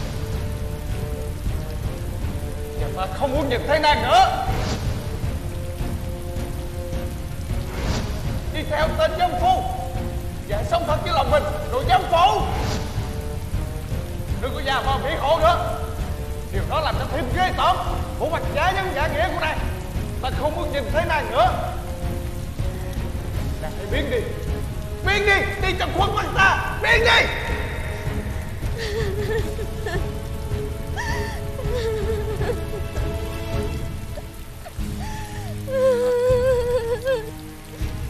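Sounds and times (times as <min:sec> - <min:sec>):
heavy rain falling: 0:00.0 - 0:38.0
mournful music: 0:00.0 - 0:38.0.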